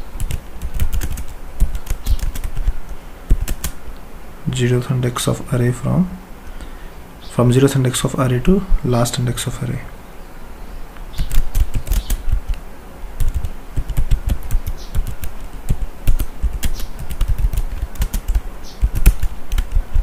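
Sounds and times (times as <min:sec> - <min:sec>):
typing on computer keyboard: 0:00.2 - 0:02.7, 0:03.3 - 0:03.8, 0:11.2 - 0:12.6, 0:13.2 - 0:19.8.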